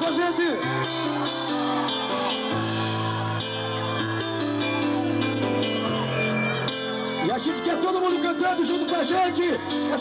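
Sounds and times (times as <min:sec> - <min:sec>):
electric guitar chords: 0:00.0 - 0:10.0.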